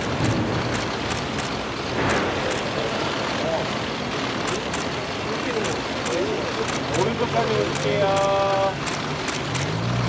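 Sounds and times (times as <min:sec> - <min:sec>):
camera shutter clicks: 0:00.0 - 0:02.8, 0:04.4 - 0:05.0, 0:06.0 - 0:10.0
outdoor crowd hubbub: 0:00.0 - 0:10.0.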